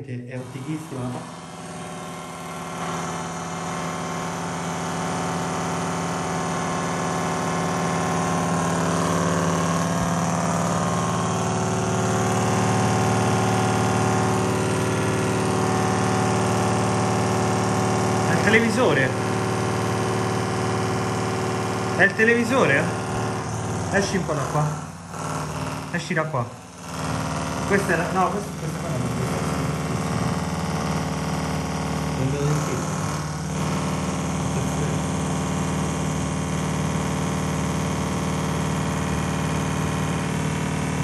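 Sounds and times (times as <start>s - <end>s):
person speaking: 0.0s - 1.3s, 23.6s - 24.9s
electrical buzzing hum: 0.0s - 41.0s.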